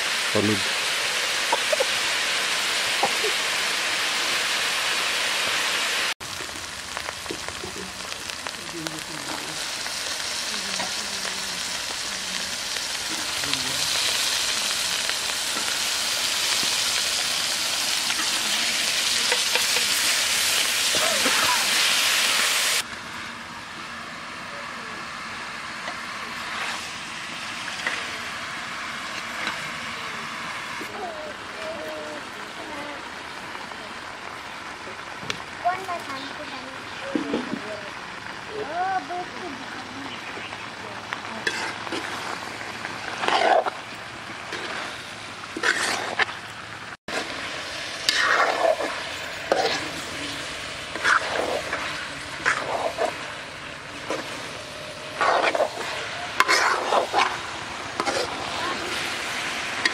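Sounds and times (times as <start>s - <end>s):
vegetables sizzling in hot oil: 0.0s - 59.9s
metal ladle stirring: 55.2s - 58.4s.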